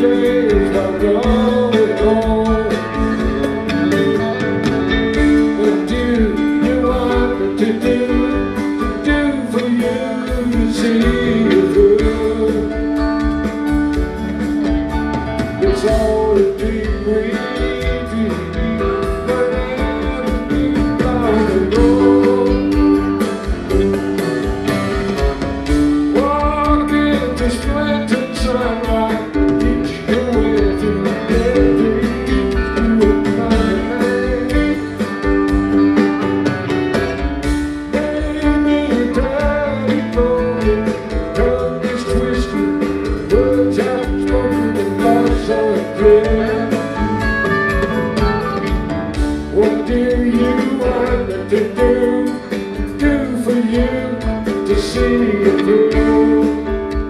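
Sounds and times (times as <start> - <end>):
person singing: 0.0 - 14.4, 15.6 - 24.9, 25.8 - 36.2, 37.7 - 57.0
drums: 0.0 - 57.0
electric bass: 0.0 - 57.0
electric guitars: 0.0 - 57.0.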